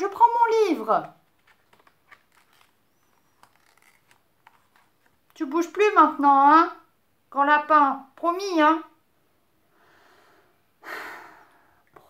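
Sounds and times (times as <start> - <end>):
book page turning: 0.8 - 5.4.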